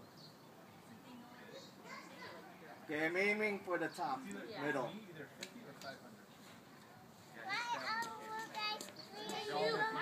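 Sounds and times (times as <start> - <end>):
children calling and chattering: 0.4 - 5.1, 5.9 - 10.0.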